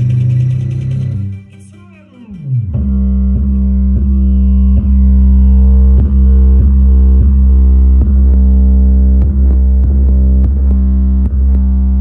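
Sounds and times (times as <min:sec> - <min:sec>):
bass-heavy music through speakers: 0:00.0 - 0:12.0.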